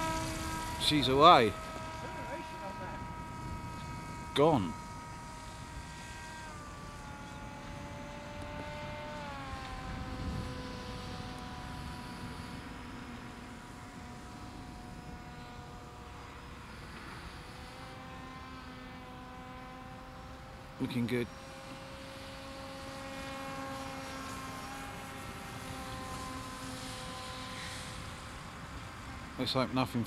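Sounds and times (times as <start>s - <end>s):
electric motor and propeller whining: 0.0s - 30.0s.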